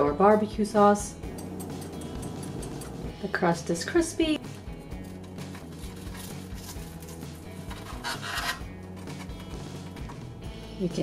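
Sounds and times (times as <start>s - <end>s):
background music: 0.0s - 11.0s
short scratchy rasp: 7.8s - 8.6s.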